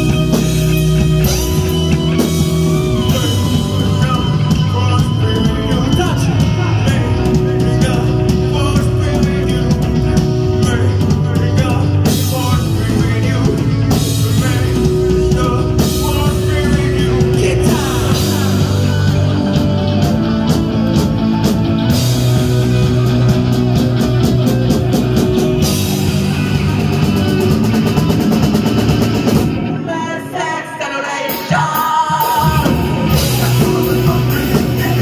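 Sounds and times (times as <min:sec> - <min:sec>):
live rock band playing: 0:00.0 - 0:35.0.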